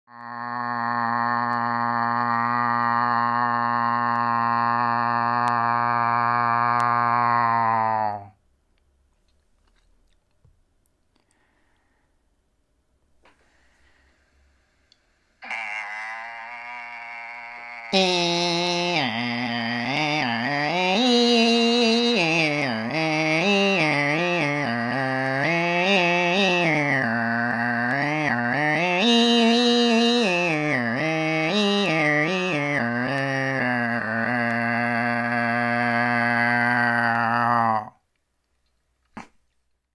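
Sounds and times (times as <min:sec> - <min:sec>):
man imitating bagpipe drone: 0:00.1 - 0:08.3, 0:15.4 - 0:38.0.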